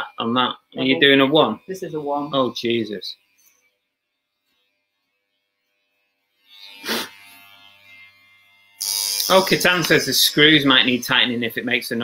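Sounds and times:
electric hair clippers buzzing: 0.6s - 12.0s.

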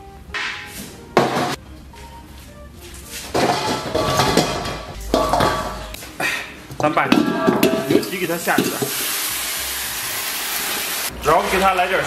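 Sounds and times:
faint background music: 0.0s - 12.0s
water splashing in a pot: 6.8s - 11.1s.

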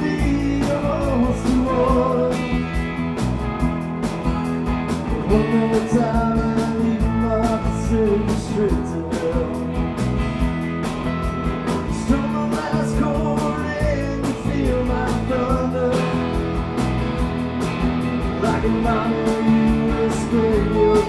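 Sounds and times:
man singing: 0.0s - 2.9s, 5.1s - 9.8s, 11.7s - 16.6s, 18.3s - 21.0s
drums keeping a steady beat: 0.0s - 21.0s
electric guitar: 0.0s - 21.0s.

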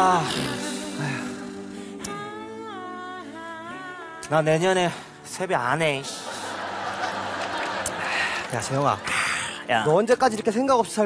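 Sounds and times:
person humming a long note: 0.0s - 3.1s.

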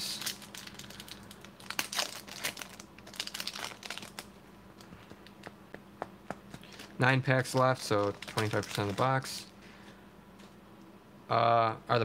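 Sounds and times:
foil wrapper crinkling and tearing: 0.0s - 4.3s, 6.6s - 9.5s.

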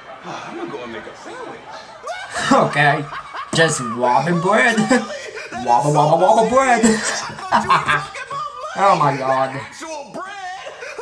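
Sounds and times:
man laughing and snickering: 6.8s - 9.2s.

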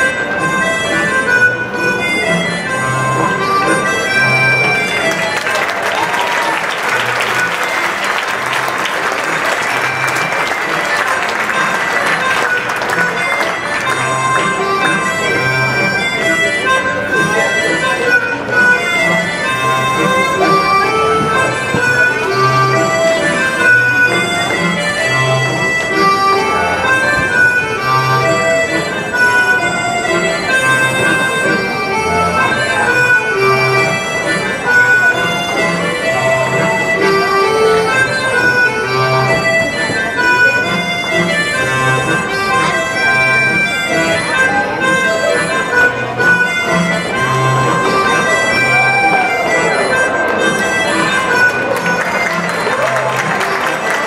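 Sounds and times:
folk dance tune on accordion: 0.0s - 54.0s
audience applauding: 4.7s - 14.5s, 50.1s - 54.0s.

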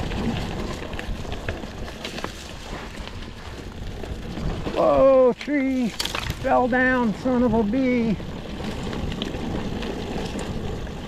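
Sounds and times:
bike clicks and rattles: 0.0s - 11.0s
tyre and trail rumble: 0.0s - 11.0s
wind noise: 0.0s - 11.0s.

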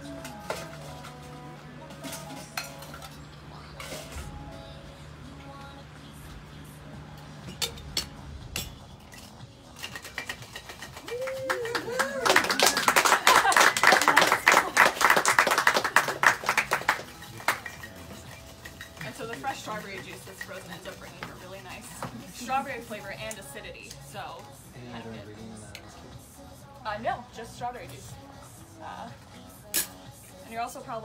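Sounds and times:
ice cubes rattling in shaker: 9.1s - 21.9s.

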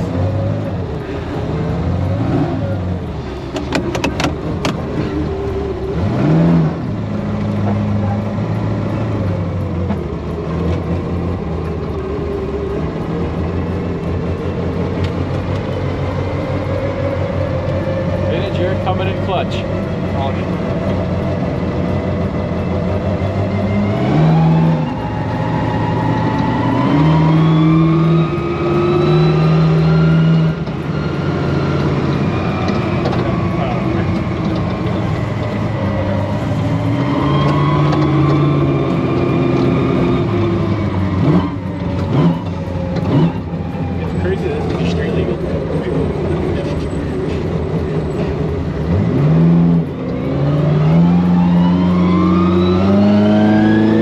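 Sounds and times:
truck engine revving: 0.0s - 54.0s.

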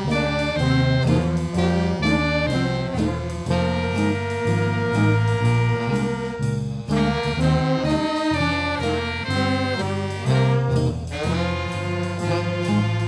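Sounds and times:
jazz band playing: 0.0s - 13.0s.

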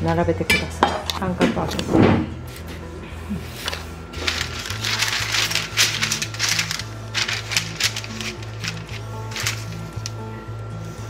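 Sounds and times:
parchment paper crinkling: 3.4s - 10.4s.

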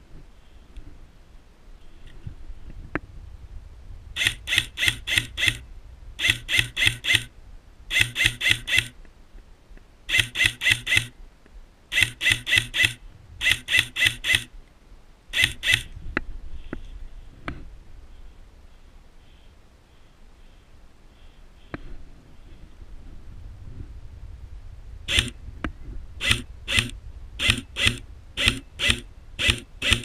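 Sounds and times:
airsoft rifle shots: 4.2s - 5.6s, 6.2s - 7.3s, 10.1s - 11.1s, 25.1s - 25.4s, 26.2s - 30.0s
light mechanical clicks: 25.1s - 30.0s.

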